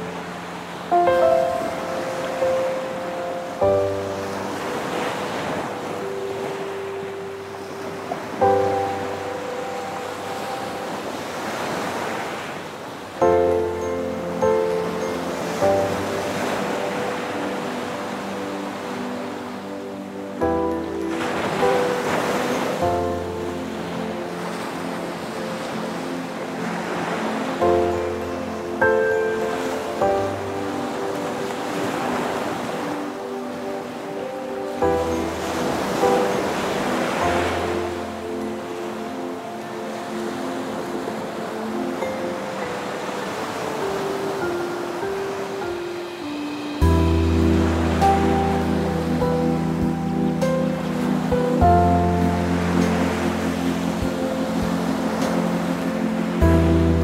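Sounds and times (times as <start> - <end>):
gentle piano chords: 0.0 - 57.0
ocean surf washing ashore: 0.0 - 57.0.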